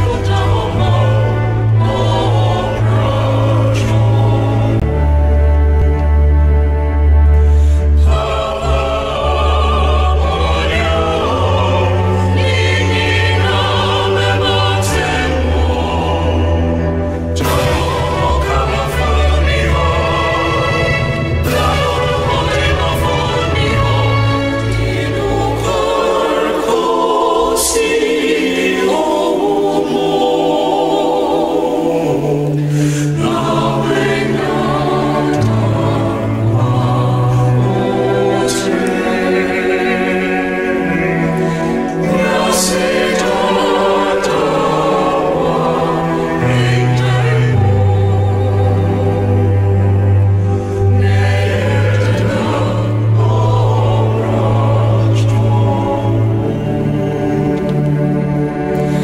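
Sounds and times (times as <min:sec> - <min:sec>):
voices singing gospel song: 0:00.0 - 0:06.6, 0:07.6 - 0:59.0.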